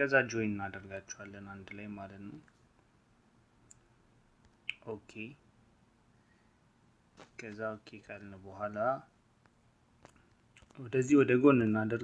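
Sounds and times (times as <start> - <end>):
man speaking: 0.0 - 2.4, 4.7 - 5.4, 7.4 - 9.1, 10.7 - 12.0
background hiss: 0.0 - 12.0.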